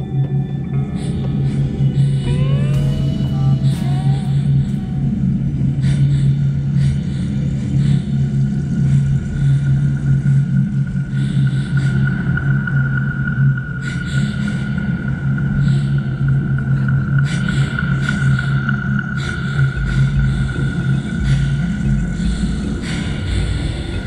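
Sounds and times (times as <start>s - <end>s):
loud low hum drone: 0.0s - 24.0s.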